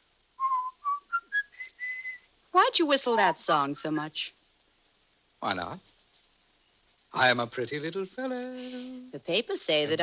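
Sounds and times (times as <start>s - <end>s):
man whistling a tune: 0.4s - 2.3s.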